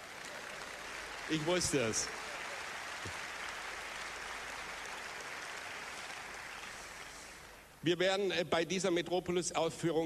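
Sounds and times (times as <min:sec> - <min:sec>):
audience applauding: 0:00.0 - 0:07.6.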